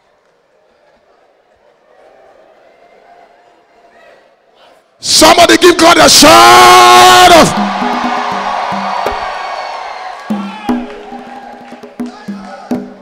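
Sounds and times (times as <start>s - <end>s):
preacher shouting: 5.0s - 12.9s
congregation shouting and cheering: 5.0s - 13.0s.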